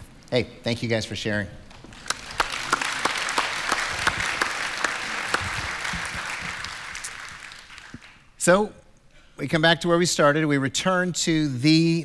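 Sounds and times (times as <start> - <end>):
crowd applauding: 1.9 - 8.3.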